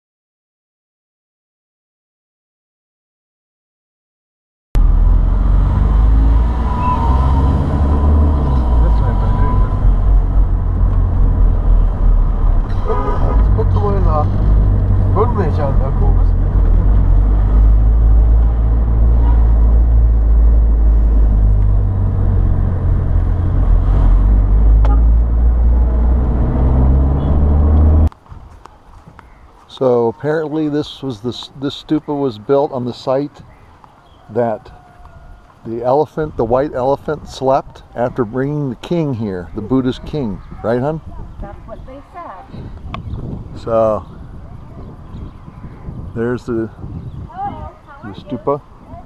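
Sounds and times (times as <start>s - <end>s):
car engine and road rumble: 4.8s - 49.0s.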